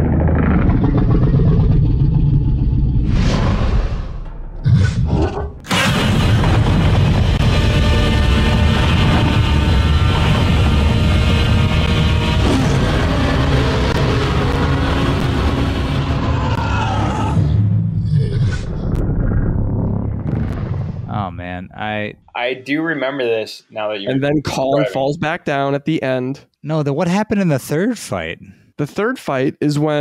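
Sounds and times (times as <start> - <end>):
deep rumbling and booming effects: 0.0 - 22.3
film score: 0.0 - 30.0.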